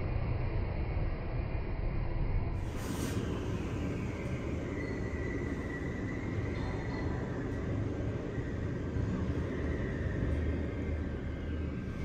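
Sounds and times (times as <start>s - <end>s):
elevator ride rumble: 0.0s - 12.0s.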